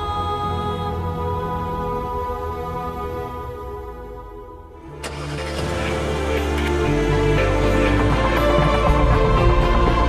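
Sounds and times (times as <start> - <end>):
background music: 0.0 - 10.0
car engine starting and running: 0.0 - 10.0.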